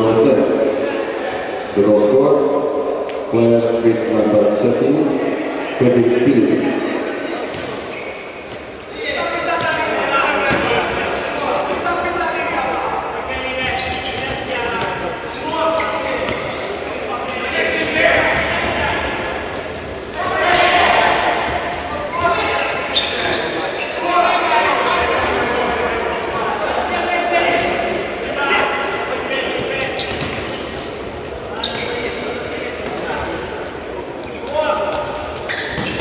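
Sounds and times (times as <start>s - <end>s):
ball bouncing on hard court: 10.4s - 11.1s, 29.6s - 30.7s, 34.3s - 36.0s.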